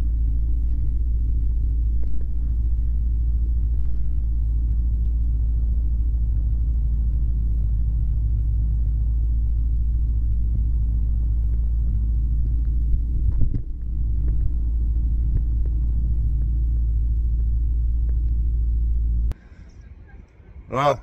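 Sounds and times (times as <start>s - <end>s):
microlight engine drone: 0.0s - 21.0s.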